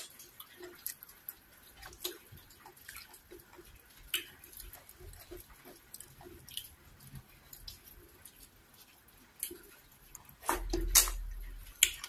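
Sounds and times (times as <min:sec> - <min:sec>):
wet chewing: 0:00.0 - 0:12.0.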